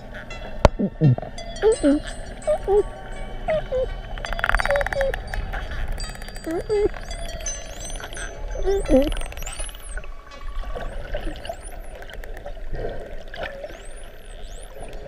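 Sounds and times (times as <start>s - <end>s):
dolphins whistling underwater: 0.0s - 12.2s, 13.4s - 15.0s
water noise: 0.0s - 15.0s
dolphin clicks: 3.6s - 8.2s.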